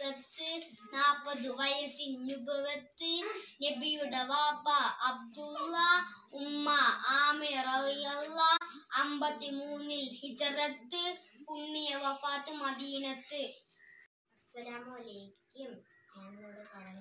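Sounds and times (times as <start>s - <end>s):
boy singing unaccompanied: 0.0s - 13.4s.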